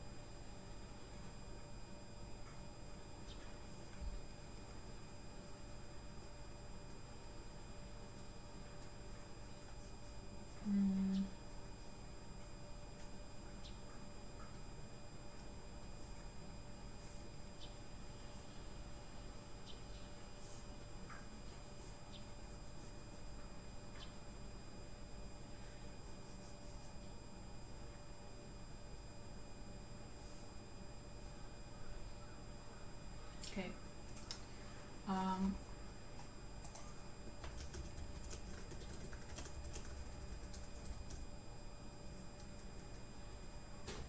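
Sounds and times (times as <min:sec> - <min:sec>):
faint high whine: 0:00.0 - 0:44.0
low electrical hum: 0:00.0 - 0:44.0.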